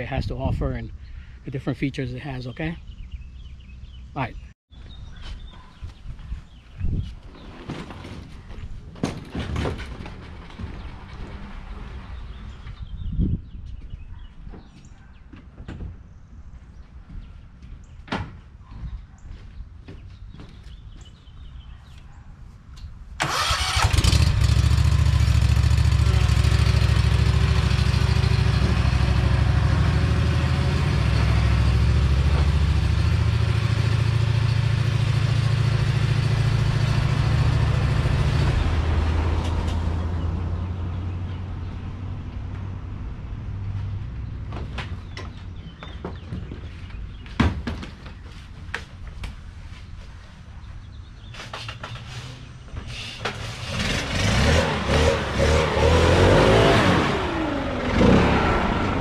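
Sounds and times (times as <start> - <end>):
mower engine running: 23.2 - 39.8, 53.4 - 59.0.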